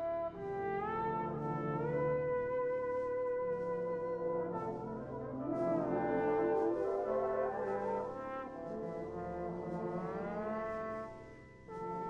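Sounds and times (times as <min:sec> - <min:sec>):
brass band playing chords: 0:04.2 - 0:12.0.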